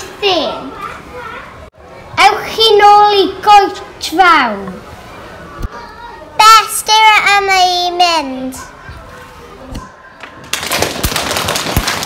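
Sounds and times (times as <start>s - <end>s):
applause: 10.5s - 12.0s.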